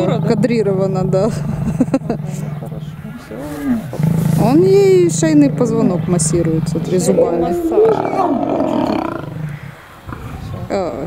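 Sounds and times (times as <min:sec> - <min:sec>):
lion snarling and growling: 0:00.0 - 0:11.0.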